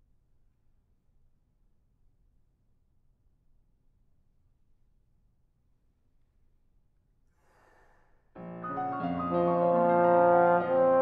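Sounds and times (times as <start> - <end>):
faint quick intake of breath: 7.3 - 8.3.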